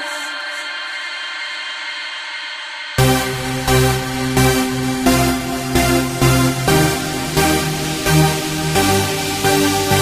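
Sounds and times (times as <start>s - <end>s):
dance beat with heavy bass: 3.0s - 10.0s
sustained synth chord: 3.0s - 10.0s.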